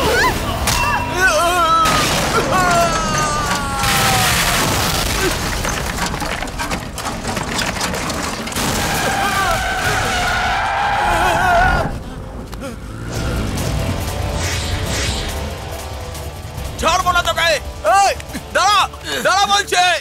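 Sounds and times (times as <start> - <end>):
dramatic background music: 0.0 - 6.0, 8.3 - 20.0
flying debris impacts: 1.8 - 10.7.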